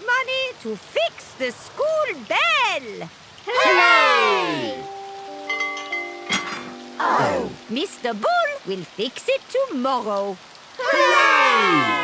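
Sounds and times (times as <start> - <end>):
bell-like chimes ringing: 4.8 - 7.8.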